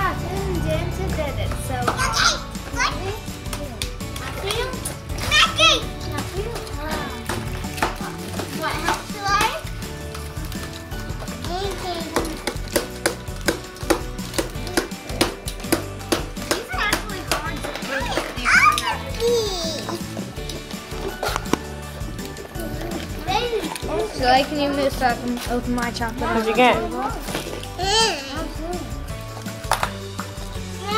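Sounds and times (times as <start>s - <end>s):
children chattering: 0.0s - 9.7s, 16.6s - 20.2s, 22.5s - 25.3s
background music: 0.0s - 30.9s.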